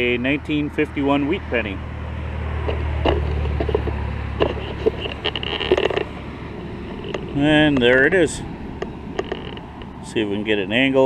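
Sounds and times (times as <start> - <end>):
highway traffic rumble: 0.0 - 11.0
light scrapes and clicks: 2.6 - 7.9, 8.8 - 10.0.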